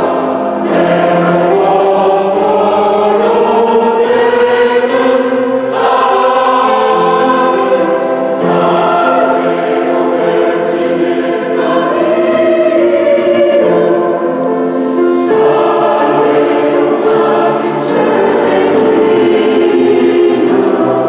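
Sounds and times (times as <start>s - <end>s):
mixed choir singing: 0.0s - 21.0s.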